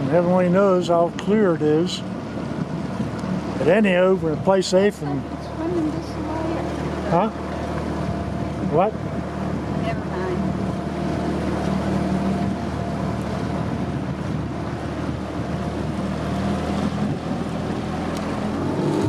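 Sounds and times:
motorboat engine running: 0.0s - 19.0s.

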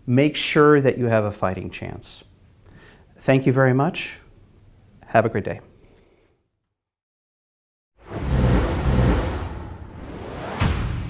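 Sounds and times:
deep swell with low tones: 8.0s - 11.0s.

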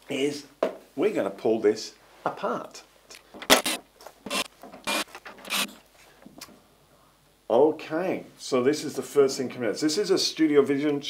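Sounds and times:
cordless drill blips: 3.5s - 5.7s.

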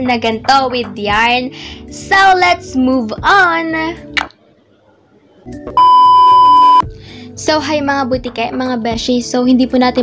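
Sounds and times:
faint background music: 0.0s - 10.0s
loud electronic beep: 5.8s - 6.8s.

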